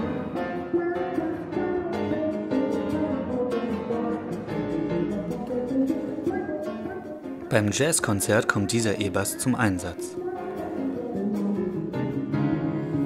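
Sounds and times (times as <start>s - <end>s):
piano: 0.0s - 13.0s.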